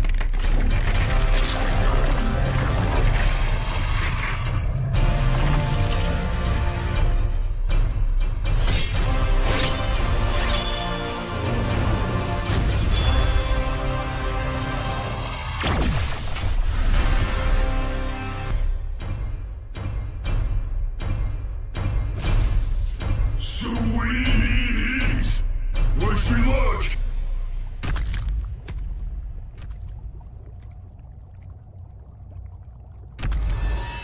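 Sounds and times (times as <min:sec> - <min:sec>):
dramatic background music: 0:00.0 - 0:31.4, 0:32.4 - 0:34.0
low rumble: 0:27.0 - 0:34.0.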